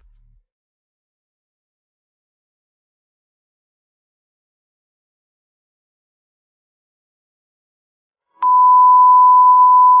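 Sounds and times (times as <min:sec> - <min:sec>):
steady test tone beep: 0:08.4 - 0:10.0.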